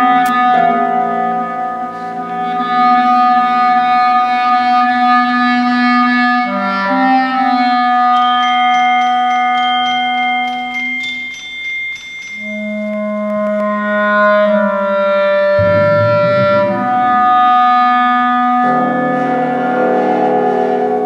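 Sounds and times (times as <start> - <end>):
clarinet playing long notes: 0.0 - 8.8, 12.4 - 20.2
high struck percussion notes: 15.6 - 18.5.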